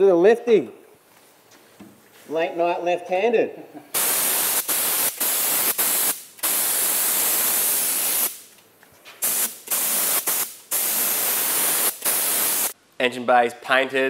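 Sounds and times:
paint spray gun hissing in bursts: 0:03.9 - 0:08.5, 0:09.2 - 0:12.8.

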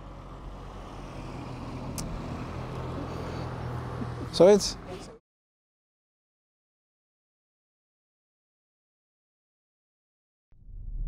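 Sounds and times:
vehicle engine hum: 0:00.0 - 0:05.2.

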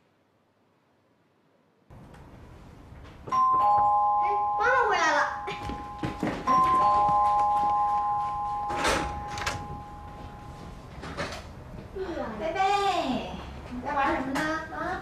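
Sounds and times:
ding-dong doorbell chime: 0:03.3 - 0:10.6.

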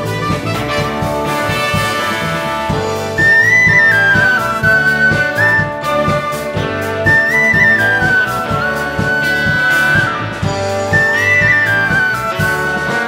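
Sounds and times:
steady beat: 0:00.0 - 0:13.0
wooden flute melody: 0:01.4 - 0:13.0.

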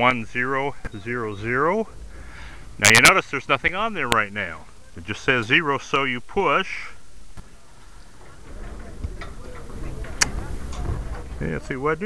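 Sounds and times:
low handling rumble: 0:00.0 - 0:12.0.

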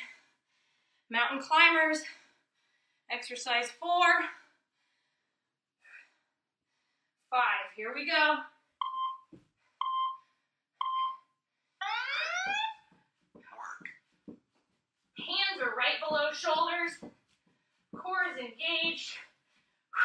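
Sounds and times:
woman speaking: 0:01.1 - 0:02.1, 0:03.1 - 0:04.3, 0:07.3 - 0:08.4, 0:15.2 - 0:17.0, 0:18.0 - 0:19.2
interval timer beeping: 0:08.8 - 0:10.2, 0:10.8 - 0:11.2
longer rising timer tone: 0:11.8 - 0:12.8.

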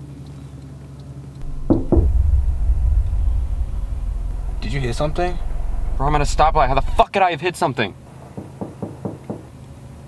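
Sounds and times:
low car hum: 0:01.4 - 0:07.2.

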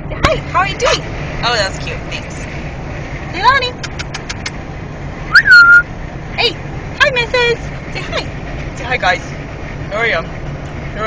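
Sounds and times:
car road hum: 0:00.0 - 0:11.0
dog whining: 0:05.3 - 0:05.8.

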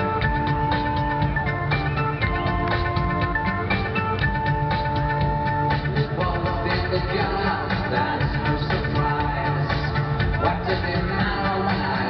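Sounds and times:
synth-pop music through sound system: 0:00.0 - 0:12.0.

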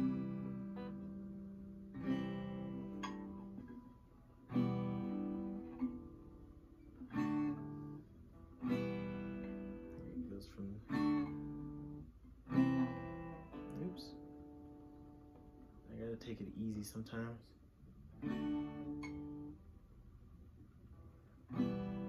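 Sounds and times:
acoustic guitar chords strummed: 0:00.0 - 0:17.4, 0:18.0 - 0:20.0, 0:20.9 - 0:22.0.

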